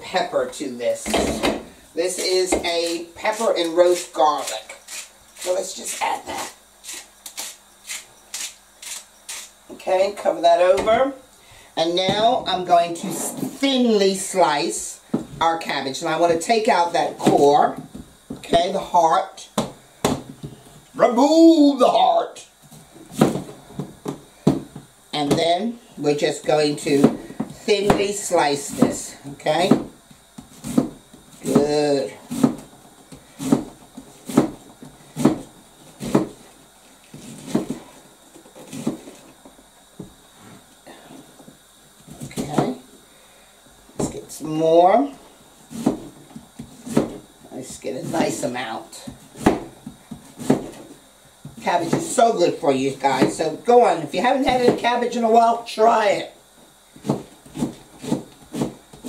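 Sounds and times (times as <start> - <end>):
knife cutting cabbage on board: 2.5 - 9.5, 29.7 - 31.7, 32.3 - 32.7, 33.4 - 34.6, 45.7 - 47.2, 49.4 - 50.8, 57.0 - 59.0.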